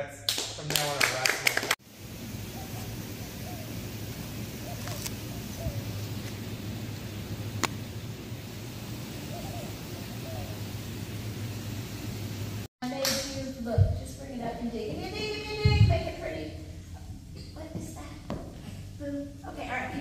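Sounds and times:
steady hiss: 0.4s - 20.0s
faint wavering calls: 2.3s - 7.5s, 8.5s - 12.1s.

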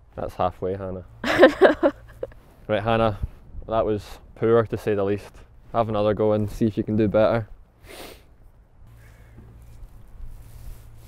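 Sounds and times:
faint hiss: 7.8s - 11.0s.

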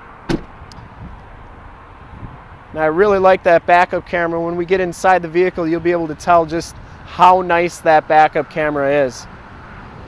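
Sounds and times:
outdoor background: 0.0s - 10.0s
sharp knock: 0.3s - 0.5s.

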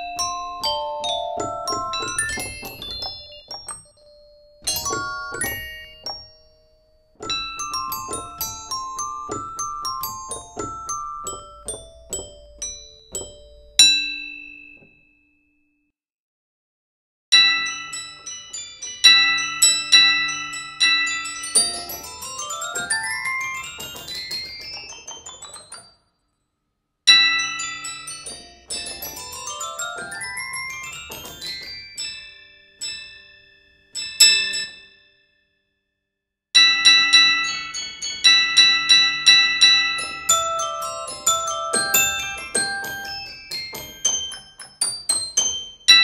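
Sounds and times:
toy piano and glockenspiel notes: 0.0s - 15.5s, 17.3s - 26.5s, 27.1s - 35.5s, 36.6s - 46.0s.

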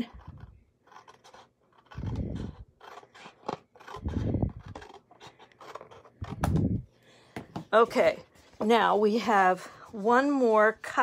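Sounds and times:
scissors cutting cardstock: 0.0s - 6.6s.

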